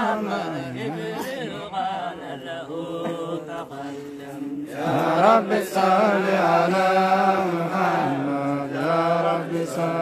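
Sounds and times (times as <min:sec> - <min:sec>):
devotional chanting: 0:00.0 - 0:10.0.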